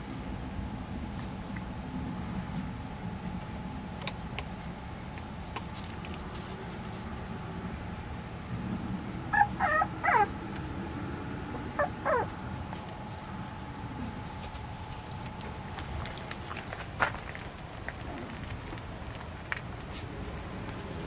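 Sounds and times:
puppy whimpering: 9.3s - 10.3s, 11.5s - 12.4s.

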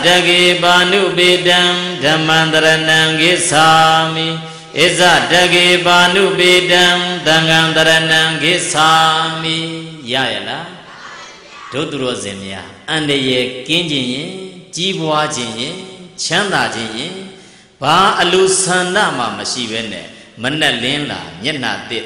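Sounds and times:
man chanting through microphone: 0.0s - 10.9s, 11.6s - 22.0s
breaths: 4.4s - 4.8s, 17.3s - 17.8s, 20.0s - 20.4s.

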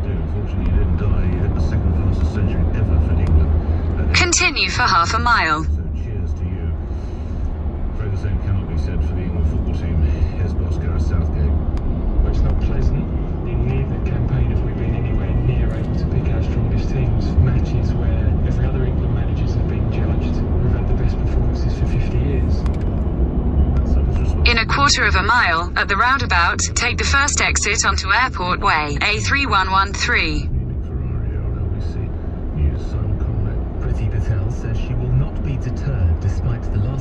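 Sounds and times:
faint car radio talk: 0.0s - 22.8s, 23.7s - 37.0s
car road and engine rumble: 0.0s - 37.0s.

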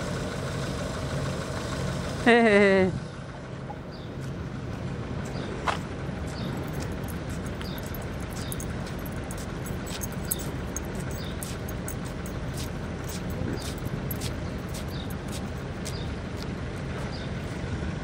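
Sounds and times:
traffic hum: 0.0s - 18.0s
small birds chirping: 3.8s - 4.3s, 5.2s - 5.6s, 6.2s - 17.6s.

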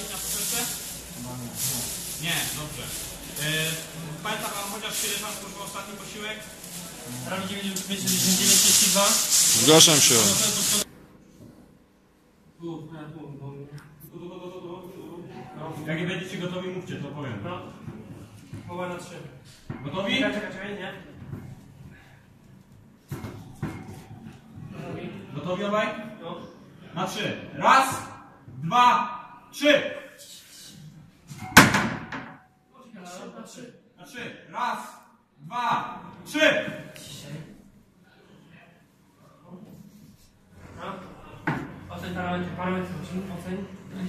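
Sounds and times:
short bursts of hiss: 0.0s - 10.9s.

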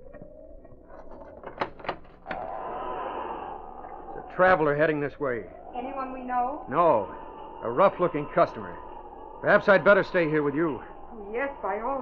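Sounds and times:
storm wind: 2.3s - 12.0s.

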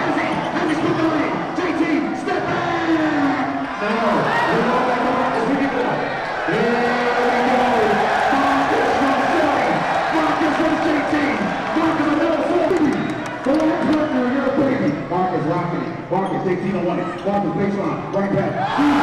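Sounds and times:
crowd cheering and shouting: 0.0s - 16.0s, 18.2s - 19.0s.

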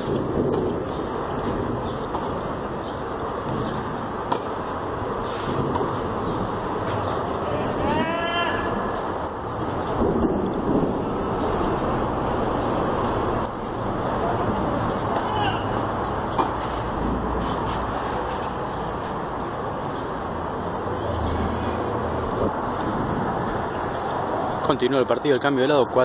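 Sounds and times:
road traffic hum: 0.0s - 26.0s.

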